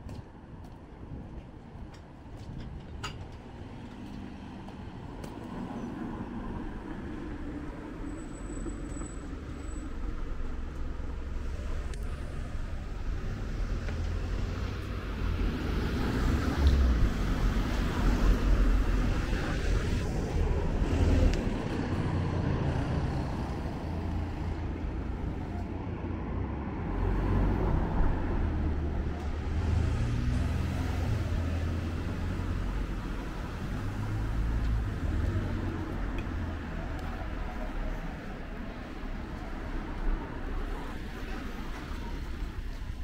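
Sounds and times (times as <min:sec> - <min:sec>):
cars driving past: 0:03.6 - 0:43.0.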